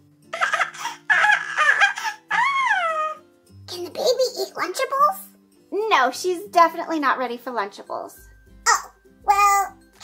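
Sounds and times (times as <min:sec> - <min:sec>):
faint background music: 0:00.0 - 0:10.0
baby-like giggling and babbling: 0:00.3 - 0:03.2.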